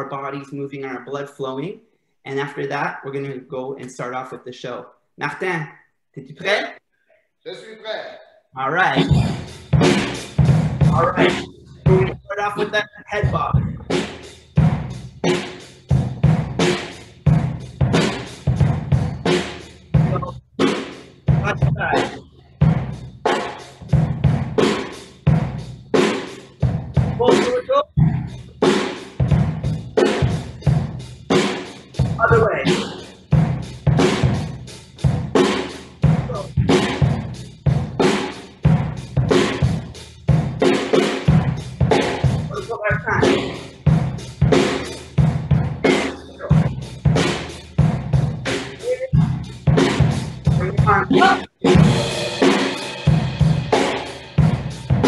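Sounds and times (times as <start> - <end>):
drum kit playing a beat: 8.7 - 55.0.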